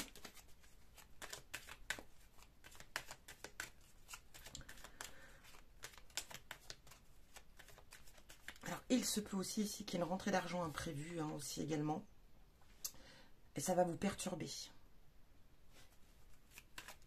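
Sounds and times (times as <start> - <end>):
cards being shuffled: 0.0 - 8.9, 16.0 - 17.0.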